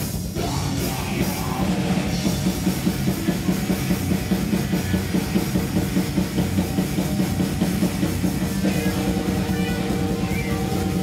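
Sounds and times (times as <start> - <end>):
fast drum-kit beat: 0.0 - 11.0.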